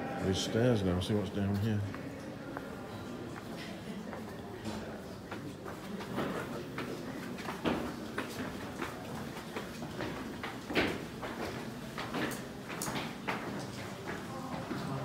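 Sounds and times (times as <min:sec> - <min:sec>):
footsteps on stone echoing: 0:05.3 - 0:14.8.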